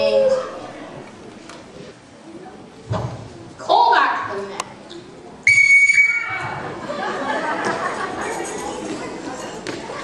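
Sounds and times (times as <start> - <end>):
audience chatter in a hall: 0.0 - 10.0
short whistle blast: 5.5 - 6.6.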